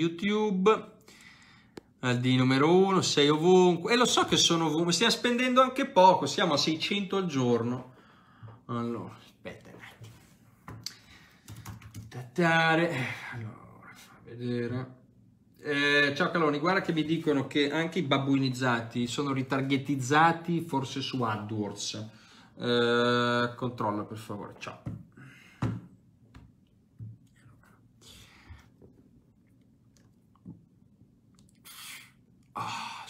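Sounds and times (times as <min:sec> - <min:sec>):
typing on a keyboard: 0:11.4 - 0:12.1
man's mouth and breath sounds: 0:27.2 - 0:32.9.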